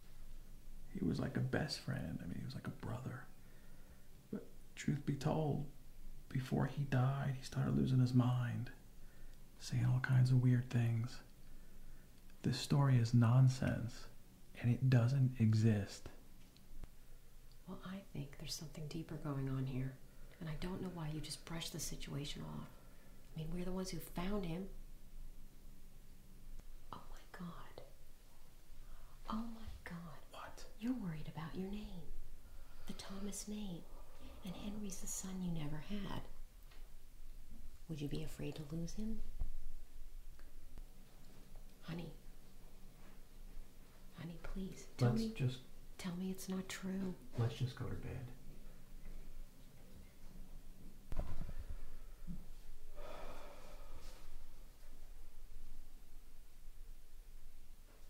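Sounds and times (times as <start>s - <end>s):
low steady hum: 0.0s - 58.0s
person whispering: 26.9s - 28.0s, 29.2s - 32.1s, 44.2s - 45.6s
soft thud: 51.1s - 52.4s
person gasping: 53.0s - 54.2s.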